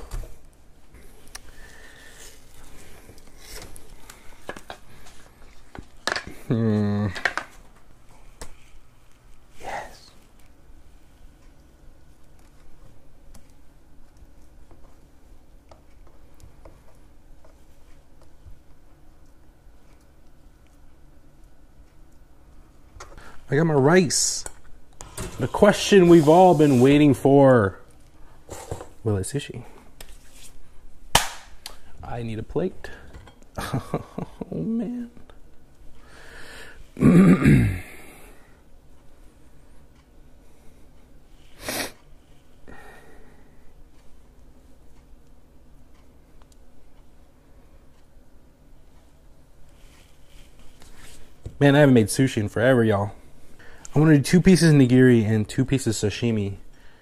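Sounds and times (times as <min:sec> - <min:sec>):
sharp hand clap: 0:31.2 - 0:31.6.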